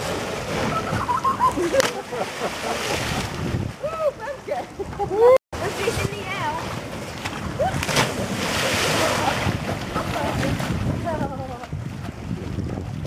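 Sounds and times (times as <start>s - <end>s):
churning water: 0.0s - 13.0s
wind on microphone: 2.9s - 13.0s
person splashing into water: 7.2s - 11.0s.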